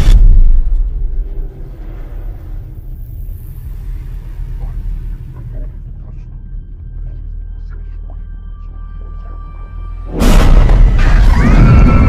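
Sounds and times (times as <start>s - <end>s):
low drone with held tones: 0.7s - 10.7s
loud boom and noisy blast: 10.1s - 12.0s.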